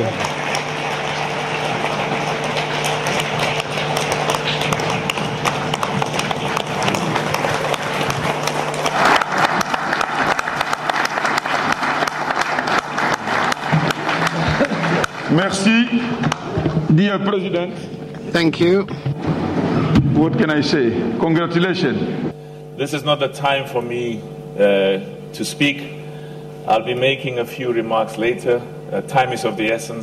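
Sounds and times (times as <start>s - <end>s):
audience applauding: 0.0s - 16.6s.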